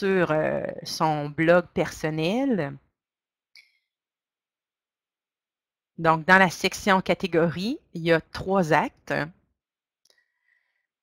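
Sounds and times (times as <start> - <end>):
woman speaking: 0.0 - 2.8, 6.0 - 9.4.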